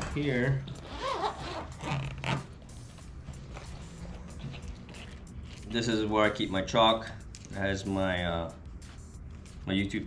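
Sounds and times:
zipper being pulled open: 0.7 - 2.6, 3.5 - 5.6.

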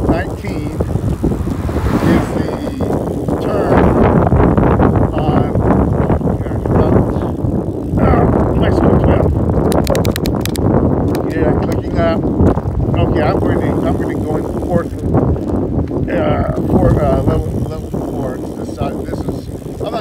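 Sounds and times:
wind buffeting microphone: 0.0 - 20.0
sharp clicks: 9.6 - 11.8.

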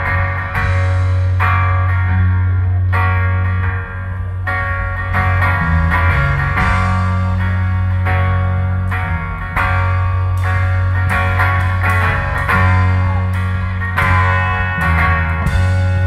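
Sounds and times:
drum kit: 0.0 - 16.0
electric guitar: 0.0 - 16.0.

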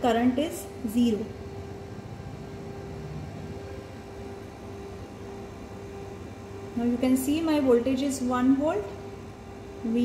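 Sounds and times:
steady low rumbling hum: 0.0 - 10.0.

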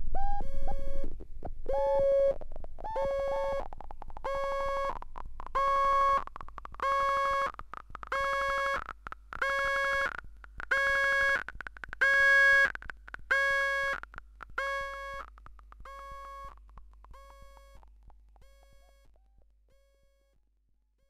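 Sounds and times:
patch cable clicks and crackles: 3.6 - 18.4.

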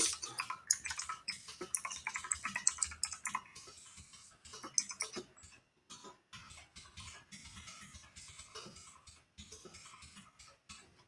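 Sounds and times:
keyboard typing: 0.0 - 3.5, 4.6 - 5.3.

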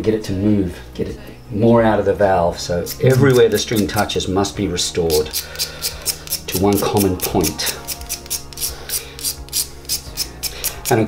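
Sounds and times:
rasping strokes shaving saddle: 2.7 - 4.2, 5.0 - 11.0.

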